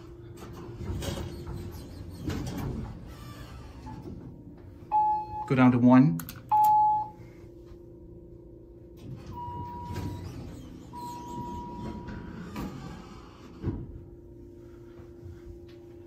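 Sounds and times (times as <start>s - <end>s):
elevator doors sliding closed: 0.0s - 4.4s, 9.0s - 14.1s
elevator low hum: 0.0s - 16.0s
doors shutting with a thump: 9.0s - 14.1s.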